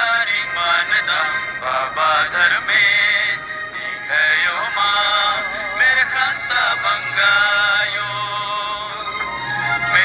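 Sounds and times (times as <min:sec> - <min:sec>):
devotional song: 0:00.0 - 0:10.0.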